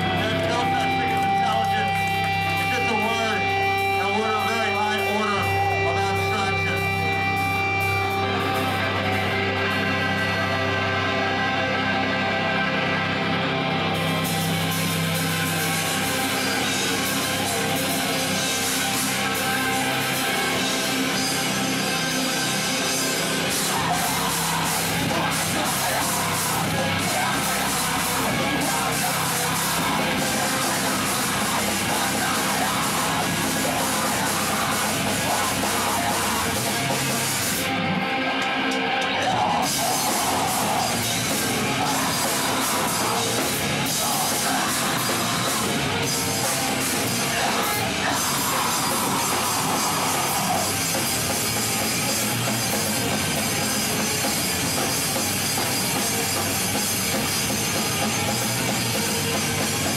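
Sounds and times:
distorted electric guitar chords: 0.0s - 59.9s
drums: 0.0s - 59.9s
screamed vocals: 23.4s - 37.7s, 38.5s - 51.4s.

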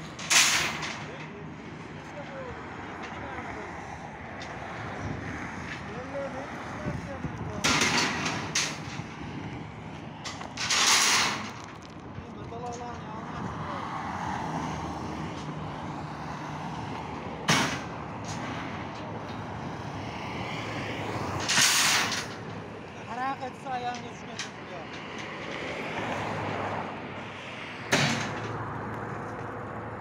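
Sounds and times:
steel bars clattering: 0.0s - 1.4s, 7.6s - 9.2s, 10.2s - 11.8s, 21.4s - 22.6s
road traffic hum: 0.0s - 30.0s
sharp metallic clank: 0.1s - 1.3s, 7.6s - 9.0s, 10.3s - 11.6s, 17.5s - 18.5s, 21.4s - 22.4s, 27.9s - 28.5s.

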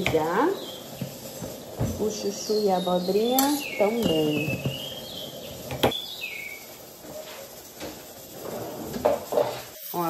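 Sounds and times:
songbird whistled call: 2.4s - 6.7s.

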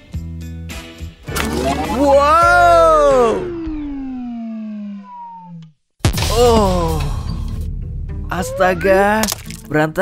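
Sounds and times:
cartoon falling tone: 1.3s - 5.7s.

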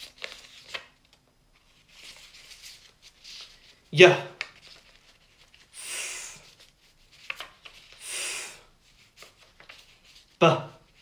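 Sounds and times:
man hissing ff sound: 5.8s - 6.5s, 8.0s - 8.7s.

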